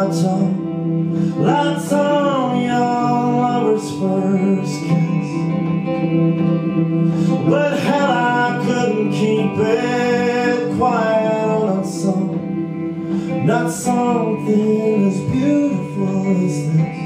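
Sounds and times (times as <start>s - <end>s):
guitars strummed and picked: 0.0s - 17.0s
person singing: 0.0s - 17.0s.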